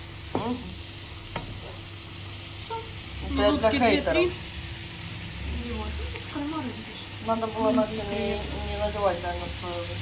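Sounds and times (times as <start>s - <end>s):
seafood sizzling in a frying pan: 0.0s - 10.0s.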